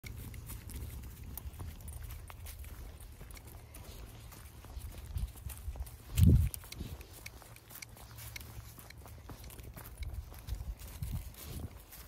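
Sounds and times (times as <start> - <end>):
footsteps crunching dry leaves: 0.0 - 12.0.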